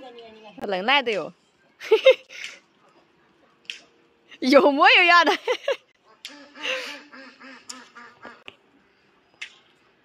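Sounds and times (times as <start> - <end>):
ducks quacking: 6.0 - 8.5.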